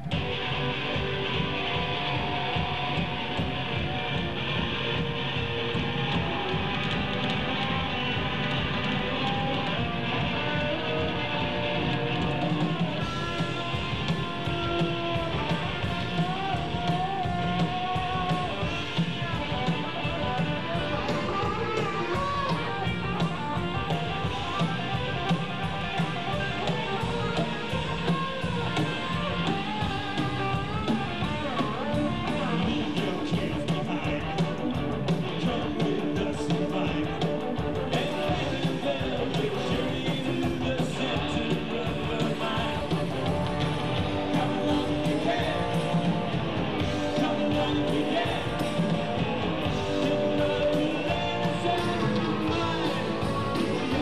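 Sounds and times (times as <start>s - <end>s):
rock band playing live: 0.0s - 54.0s
wavering lead guitar line: 0.0s - 54.0s.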